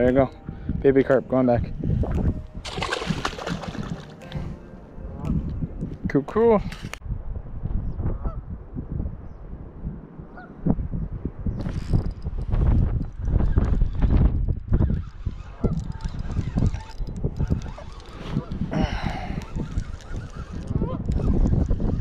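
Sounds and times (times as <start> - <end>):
wind rumbling on microphone: 0.0 - 22.0.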